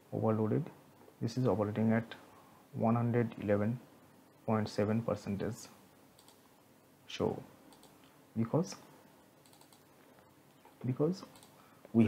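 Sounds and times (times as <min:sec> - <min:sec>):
computer mouse clicks: 0:06.2 - 0:06.4, 0:07.7 - 0:08.2, 0:09.4 - 0:09.9, 0:10.6 - 0:12.0
man talking: 0:07.1 - 0:07.5, 0:08.4 - 0:08.9, 0:10.8 - 0:11.3.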